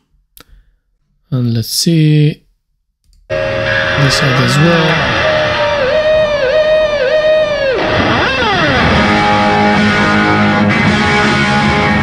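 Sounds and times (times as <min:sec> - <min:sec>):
electric guitar note bending: 0:03.3 - 0:12.0.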